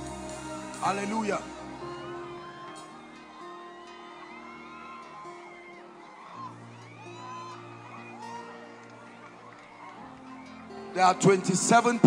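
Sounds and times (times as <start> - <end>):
faint voices: 0.0 - 12.0
soft music of sustained chords: 0.0 - 12.0.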